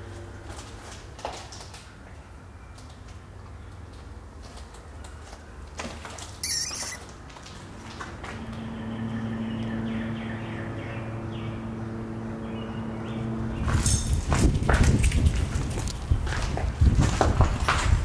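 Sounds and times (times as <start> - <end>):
footsteps crunching over rubble: 0.4 - 8.4, 13.6 - 18.0
low drone hum: 8.4 - 13.8.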